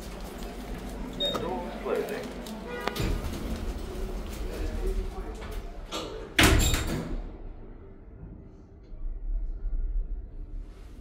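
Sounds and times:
lift doors sliding closed: 0:02.9 - 0:07.4.

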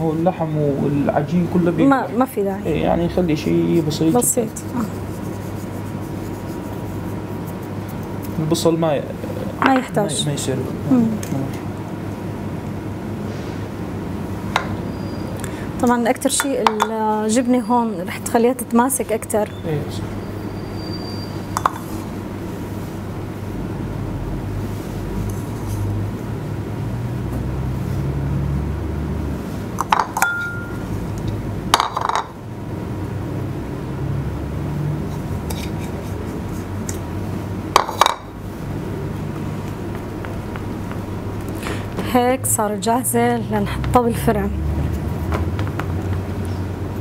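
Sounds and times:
steady low hum: 0:00.0 - 0:47.0
dishes and utensils clinking: 0:21.6 - 0:21.9, 0:29.8 - 0:30.8.

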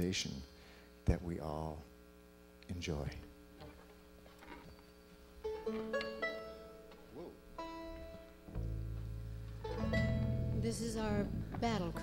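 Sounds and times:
plucked string notes: 0:05.4 - 0:12.0
low electric upright bass note: 0:05.5 - 0:12.0.

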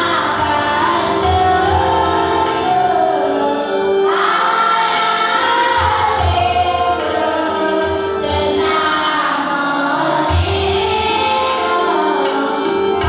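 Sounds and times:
held accompaniment notes: 0:00.0 - 0:13.0
women singing a christian song: 0:00.0 - 0:13.0.

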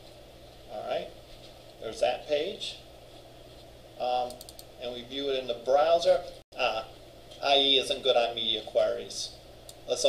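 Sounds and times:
low room tone hum: 0:00.0 - 0:10.0.

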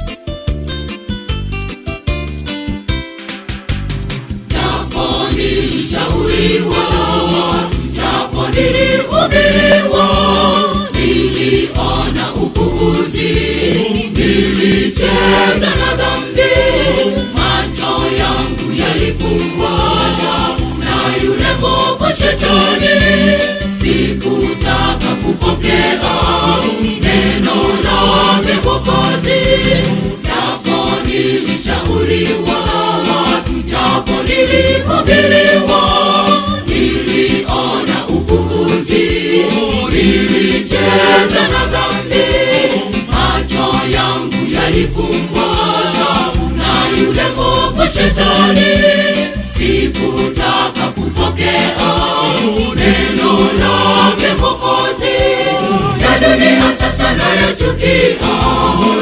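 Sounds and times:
instrumental backing with steady beat: 0:00.0 - 0:59.0
choir singing gospel song: 0:04.5 - 0:59.0.

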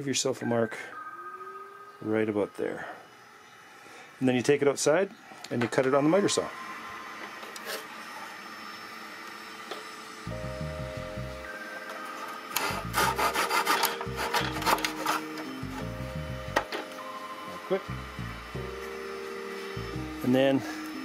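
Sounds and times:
hand saw cutting wooden dowel: 0:12.6 - 0:15.4.

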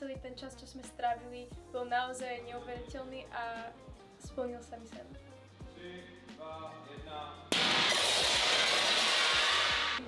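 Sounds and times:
music: 0:00.0 - 0:10.0
falling glass shards: 0:07.6 - 0:10.0
glass shattering: 0:07.6 - 0:10.0.

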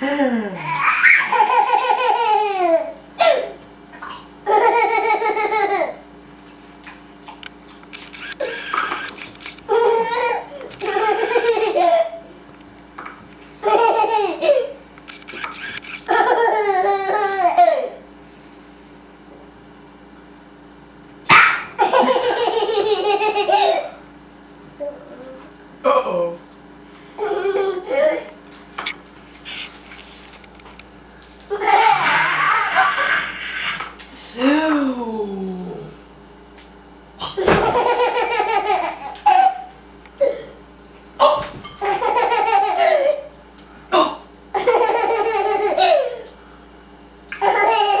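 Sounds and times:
high-pitched laugh: 0:00.0 - 0:03.4, 0:21.8 - 0:23.9, 0:31.5 - 0:33.9
baby laughing: 0:00.6 - 0:03.5, 0:04.4 - 0:06.0, 0:09.7 - 0:12.2, 0:13.6 - 0:14.8, 0:16.1 - 0:18.0, 0:21.8 - 0:24.0, 0:31.5 - 0:33.9, 0:37.4 - 0:40.4, 0:41.8 - 0:43.3, 0:44.6 - 0:46.2, 0:47.3 - 0:48.0.

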